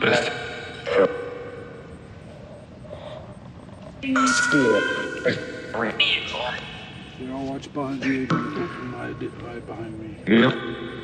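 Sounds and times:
echoing ringing tones: 0.0s - 2.3s, 4.0s - 7.3s, 8.0s - 11.0s.

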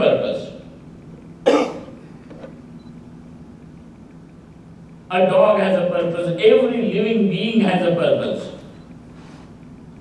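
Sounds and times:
faint low hum: 0.0s - 10.0s
person coughing: 1.4s - 2.1s.

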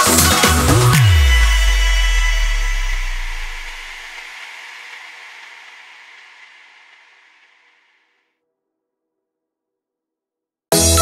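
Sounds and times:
pop dance beat: 0.0s - 6.8s
deep synth bass note dropping: 0.7s - 4.1s.

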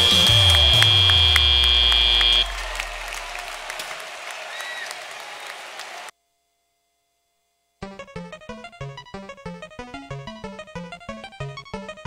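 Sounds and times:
end-of-match buzzer: 0.0s - 3.4s
crowd cheering and applauding: 0.0s - 6.1s.

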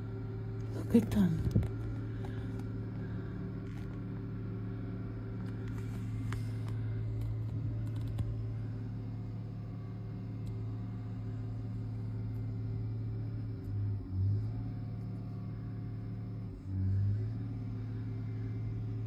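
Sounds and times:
diesel engine running: 0.0s - 19.0s.

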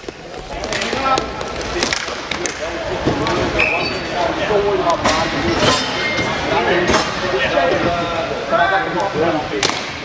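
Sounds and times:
hockey sticks and puck clacking: 0.0s - 3.7s.

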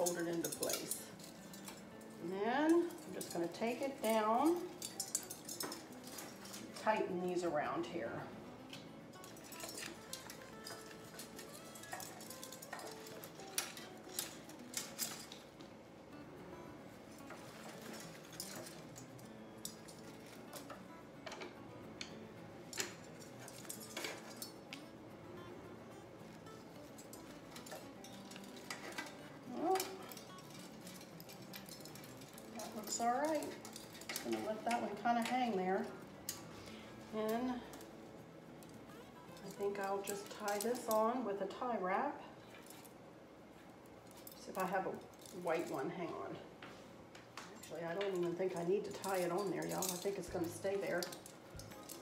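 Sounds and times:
decorations clinking on stone counter: 0.0s - 15.8s, 16.5s - 41.3s, 42.4s - 43.0s, 43.6s - 52.0s
soft faint music: 0.0s - 52.0s.

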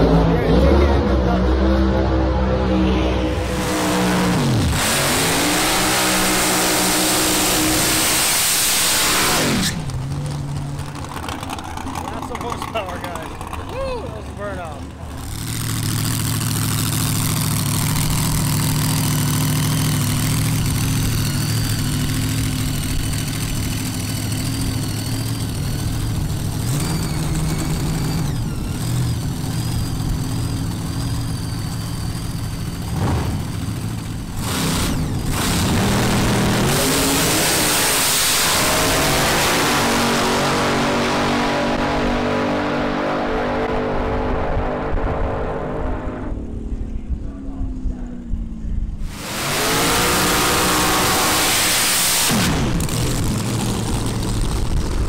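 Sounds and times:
loud noise: 0.0s - 10.0s, 15.0s - 55.0s
dragster engine idling: 9.8s - 34.5s, 52.6s - 55.0s.

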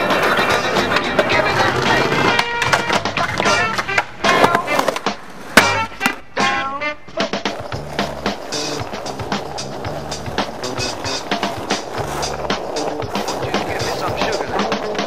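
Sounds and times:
skateboard clacking: 0.0s - 15.0s
skateboard wheels rolling on pavement: 0.0s - 15.0s
music with repeating bass line: 5.7s - 15.0s.

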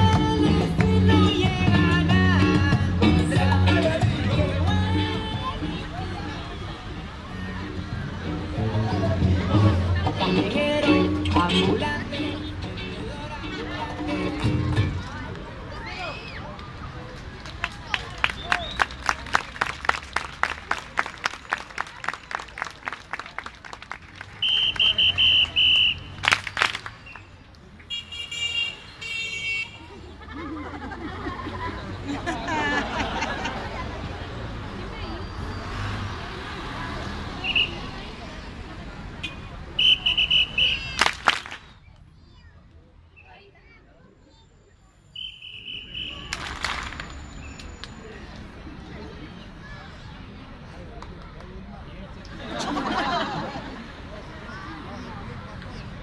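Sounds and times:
crowd and street rumble: 0.0s - 56.0s
crowd clapping: 17.3s - 27.2s, 40.9s - 41.7s, 46.2s - 47.2s
whistle blasts: 24.4s - 29.6s, 37.4s - 37.9s, 39.2s - 41.0s, 45.0s - 48.1s.

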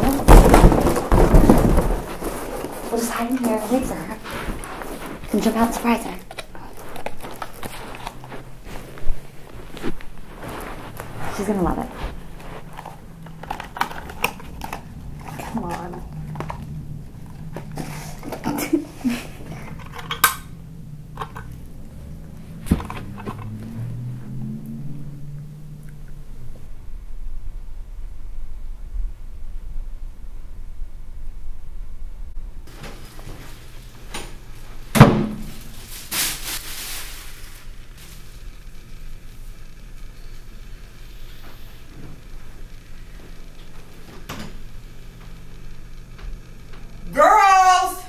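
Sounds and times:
clothing rustling: 0.0s - 20.0s, 35.4s - 38.4s
faint low hum: 0.0s - 48.0s
cardboard crinkles and clicks: 6.2s - 11.0s, 12.6s - 16.7s.

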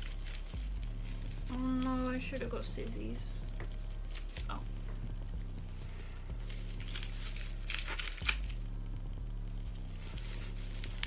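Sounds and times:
bubble wrap crinkling: 0.0s - 11.0s
loud crackles: 0.0s - 11.0s
low electrical hum: 0.0s - 11.0s.

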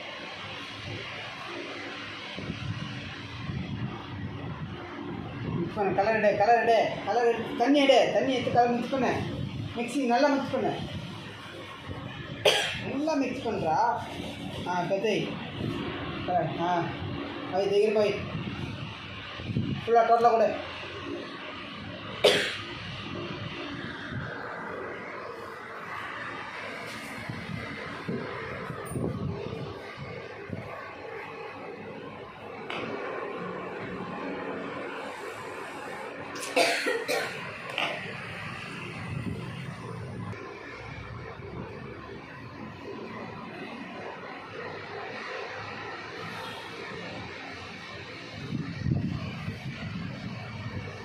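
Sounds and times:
room noise: 0.0s - 51.0s
person coughing: 12.4s - 12.9s, 22.2s - 22.7s, 36.4s - 37.4s.

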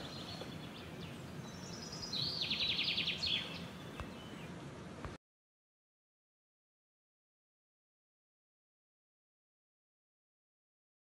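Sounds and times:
songbird trilling: 0.0s - 4.6s
background hiss: 0.0s - 5.2s.

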